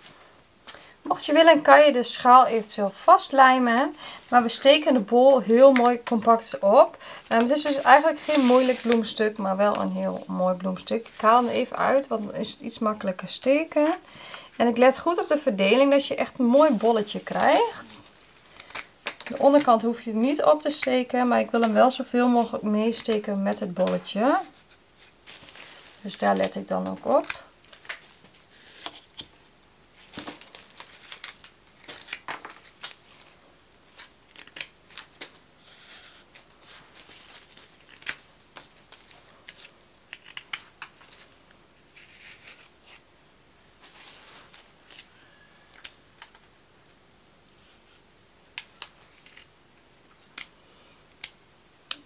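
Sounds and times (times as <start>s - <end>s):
leaves rustling: 7.3s - 9.5s, 15.8s - 19.8s, 43.8s - 46.4s.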